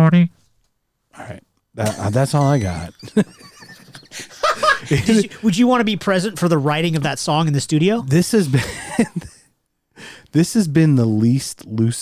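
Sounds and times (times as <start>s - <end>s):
man laughing: 1.8s - 7.0s, 8.4s - 9.5s.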